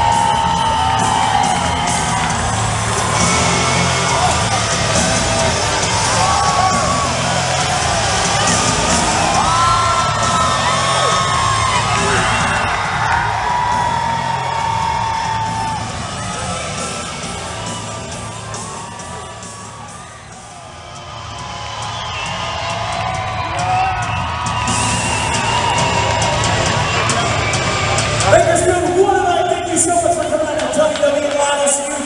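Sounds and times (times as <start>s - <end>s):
crowd cheering and shouting: 0.0s - 32.0s
loud music over loudspeakers: 0.0s - 32.0s.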